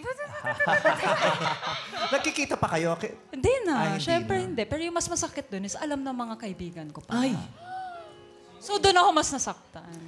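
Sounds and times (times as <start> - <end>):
people laughing: 0.2 - 2.7.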